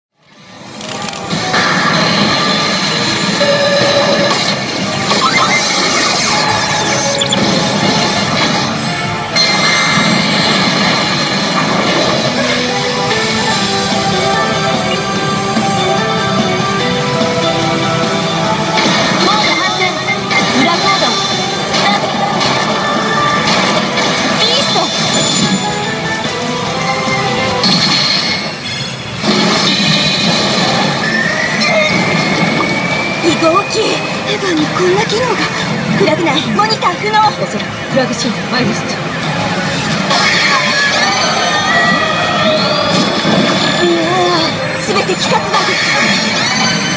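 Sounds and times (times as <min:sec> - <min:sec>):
pachinko parlour clatter: 0:00.2 - 0:46.9
pachinko game music: 0:00.3 - 0:46.9
electronic effect sounds: 0:00.7 - 0:17.1, 0:27.5 - 0:46.9
rising electronic whine: 0:02.0 - 0:08.8.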